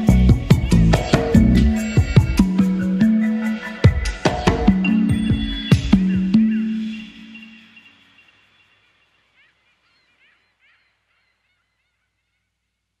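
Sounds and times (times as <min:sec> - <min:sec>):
ambient synth music: 0:00.0 - 0:09.4
faint high bird chirps: 0:04.9 - 0:12.8.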